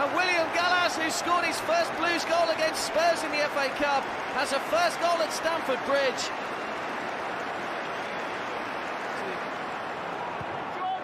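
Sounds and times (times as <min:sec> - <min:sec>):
stadium crowd cheering and clapping: 0:00.0 - 0:11.0.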